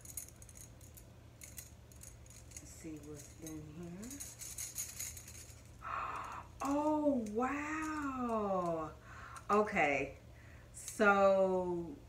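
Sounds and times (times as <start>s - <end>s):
breathy gasp: 9.0s - 9.4s.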